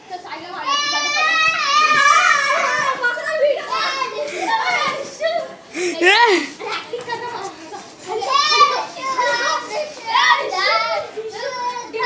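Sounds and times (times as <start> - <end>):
boys shouting: 0.6 - 5.0, 5.7 - 6.9.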